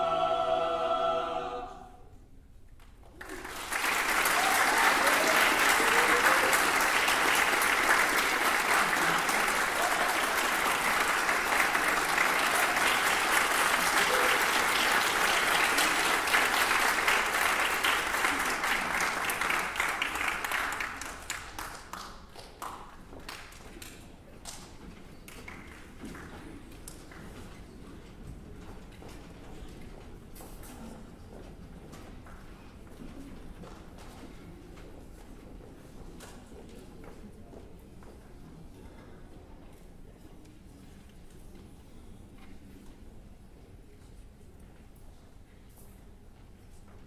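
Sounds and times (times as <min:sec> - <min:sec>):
choir chord: 0:00.0 - 0:02.1
audience applauding: 0:03.1 - 0:23.5.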